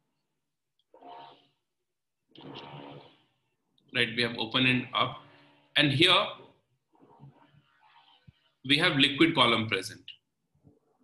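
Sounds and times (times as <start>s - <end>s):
man speaking: 3.9s - 6.5s, 8.6s - 10.2s.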